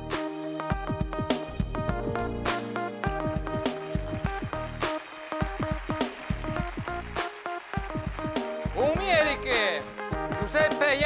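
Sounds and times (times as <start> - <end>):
electronic music: 0.0 - 11.0
synthesizer melody: 0.0 - 11.0
percussion hits: 0.2 - 10.8.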